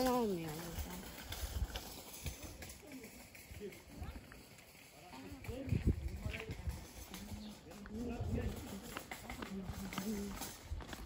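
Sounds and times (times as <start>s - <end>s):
footsteps on stone paving: 0.0s - 11.0s.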